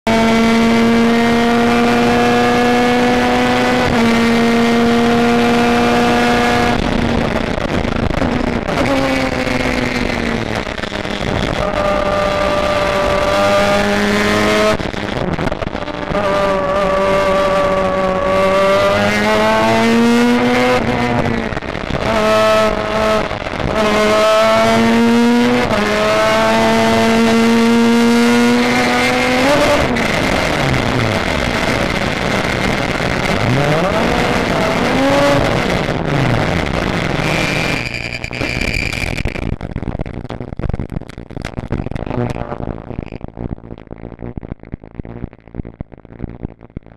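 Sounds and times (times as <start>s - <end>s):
race car engine running hard: 0.1s - 40.2s.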